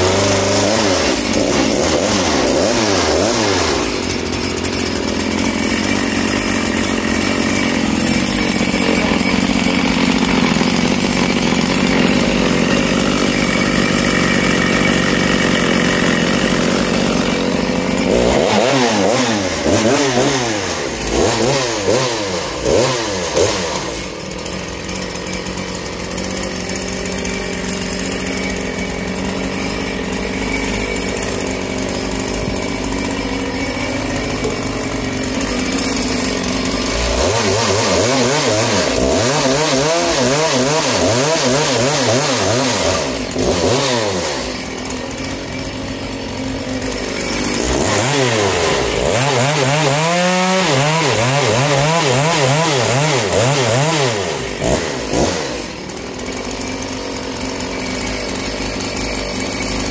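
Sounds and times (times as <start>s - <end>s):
chainsaw revving: 0.0s - 59.9s.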